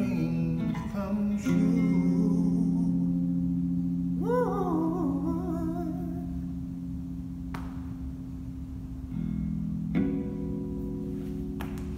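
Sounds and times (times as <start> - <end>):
electric bass guitar notes ringing: 0.0 - 11.9.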